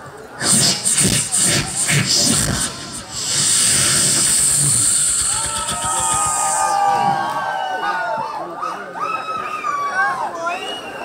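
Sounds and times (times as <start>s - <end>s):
loud steady vocal hiss: 0.0s - 6.9s.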